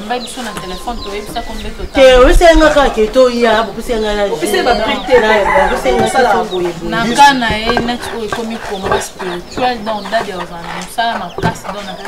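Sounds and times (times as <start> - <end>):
chickens clucking: 0.0 - 12.0
woman talking animatedly: 0.0 - 12.0.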